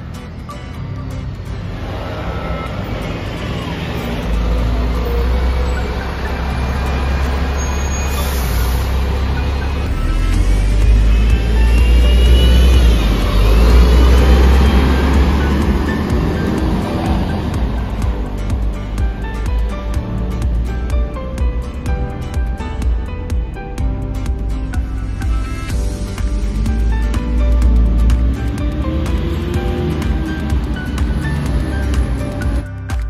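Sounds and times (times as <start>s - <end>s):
background music: 0.0s - 33.0s
bus engine rumbling: 0.0s - 33.0s
engine whine: 0.0s - 33.0s.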